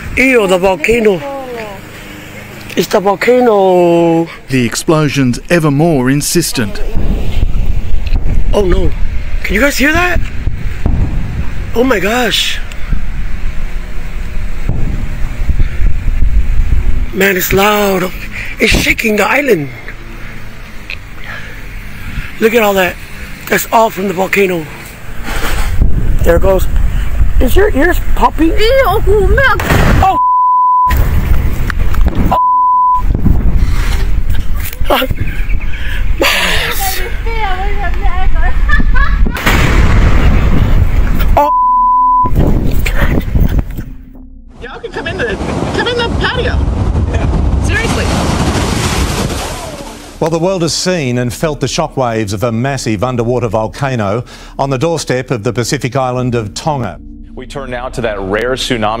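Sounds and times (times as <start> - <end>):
wind buffeting microphone: 6.6 - 17.6, 24.9 - 30.0, 30.9 - 32.4, 33.0 - 41.4, 42.2 - 44.1, 44.8 - 49.6
volcano low rumble: 10.2 - 17.1, 38.7 - 41.4, 42.3 - 50.3
ocean surge crashing over seawall: 39.3 - 41.1, 45.0 - 50.2.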